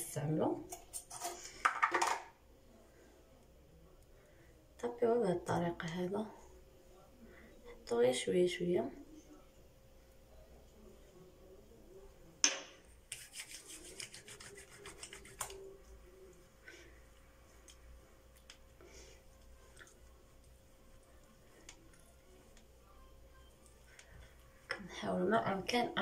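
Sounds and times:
palms rubbing together: 0:13.0 - 0:16.1.

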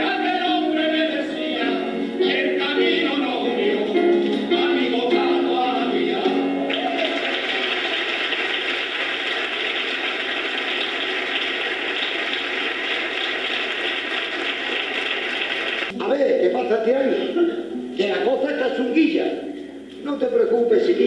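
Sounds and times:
audience applauding: 0:06.6 - 0:16.0
man talking: 0:15.9 - 0:21.0.

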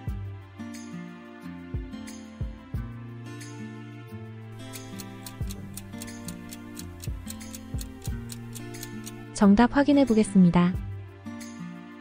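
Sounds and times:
soft background music: 0:00.0 - 0:12.0
countdown timer ticking: 0:04.6 - 0:09.4.

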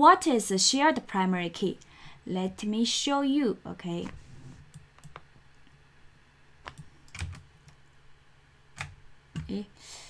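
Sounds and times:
computer keyboard clicks: 0:06.6 - 0:07.8, 0:08.8 - 0:09.6.

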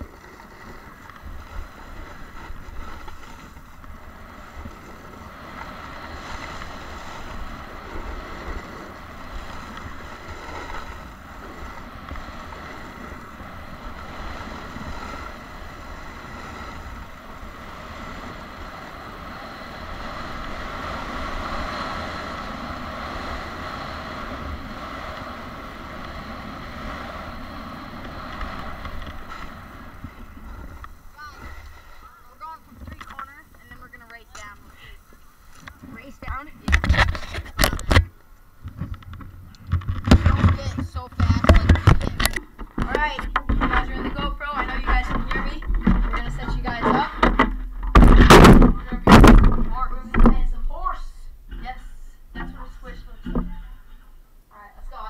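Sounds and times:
snowboard scraping on snow: 0:00.0 - 0:37.6
wind on microphone: 0:00.0 - 0:54.0.

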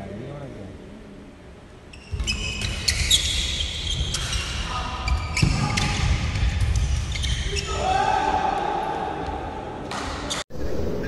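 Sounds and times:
sneaker squeaks: 0:01.9 - 0:07.8.

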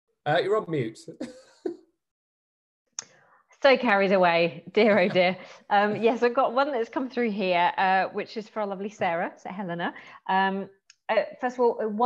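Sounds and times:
person laughing: 0:00.5 - 0:01.7, 0:04.8 - 0:06.2.

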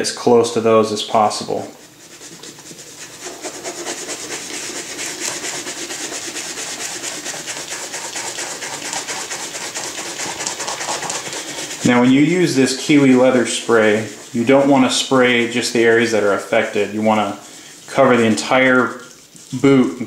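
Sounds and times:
brush scrubbing suede: 0:00.0 - 0:20.0.

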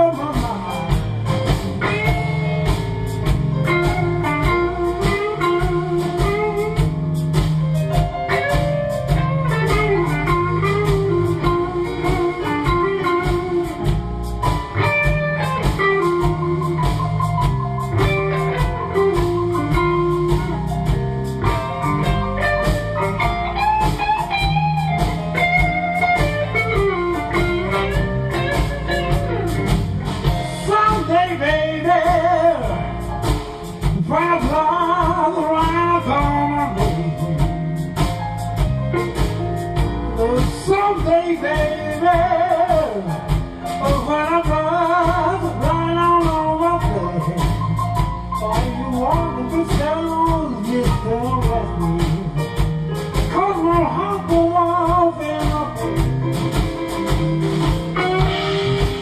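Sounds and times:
bass guitar: 0:00.0 - 0:59.0
drums: 0:00.0 - 0:59.0
electric guitar lead with bent notes: 0:00.0 - 0:59.0
keyboard: 0:00.0 - 0:59.0.

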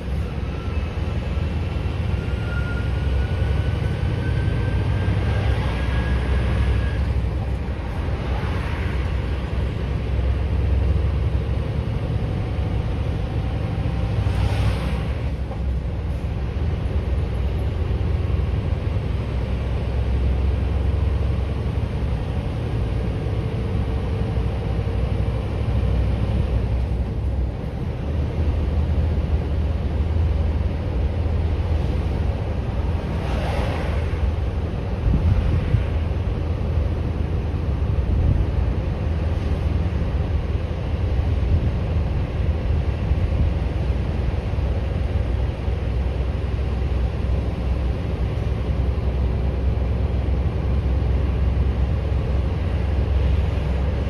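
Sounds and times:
truck engine and road rumble: 0:00.0 - 0:54.0.

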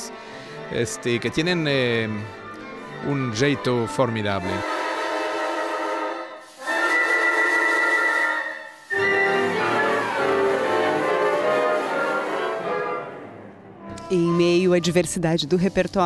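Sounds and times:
orchestra playing classical music: 0:00.0 - 0:14.8.

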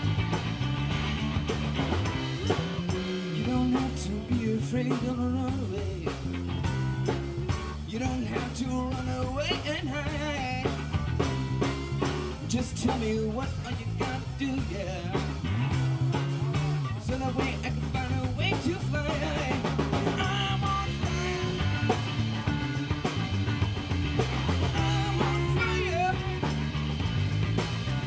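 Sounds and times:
electric guitars: 0:00.0 - 0:28.0
steady drum beat: 0:00.0 - 0:28.0.

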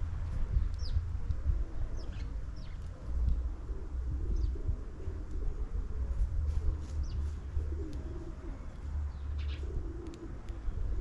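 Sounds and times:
small birds chirping: 0:00.0 - 0:11.0
dove cooing: 0:01.4 - 0:11.0.

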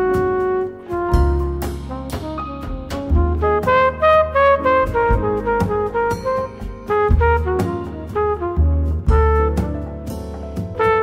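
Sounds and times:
double bass: 0:00.0 - 0:11.0
percussion: 0:00.0 - 0:11.0
trumpet solo: 0:00.0 - 0:11.0.

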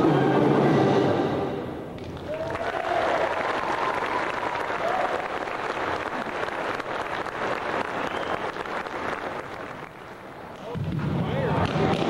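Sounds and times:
audience applauding: 0:02.0 - 0:10.4.

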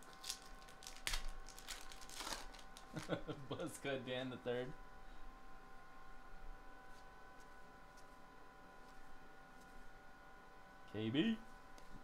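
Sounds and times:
foil wrapper tearing and crinkling: 0:00.0 - 0:03.2.

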